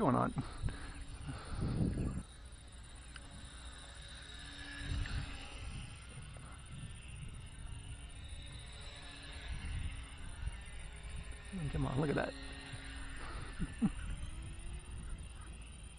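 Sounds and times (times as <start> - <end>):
model plane motor humming: 0.0 - 15.9
thin high whine: 0.0 - 15.9
wind buffeting microphone: 0.0 - 15.9.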